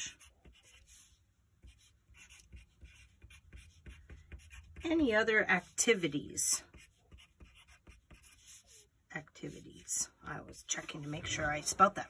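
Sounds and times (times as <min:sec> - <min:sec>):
pencil scratching on paper: 0:00.0 - 0:12.0.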